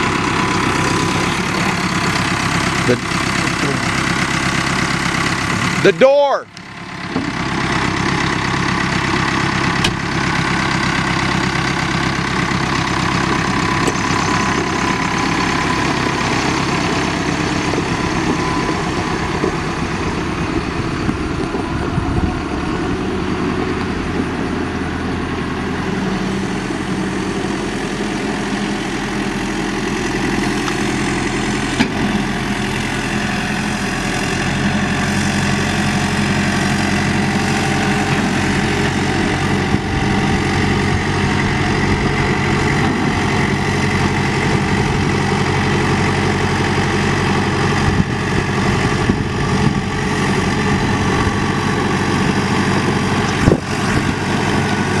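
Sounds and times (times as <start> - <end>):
diesel engine idling: 0.0 - 55.0.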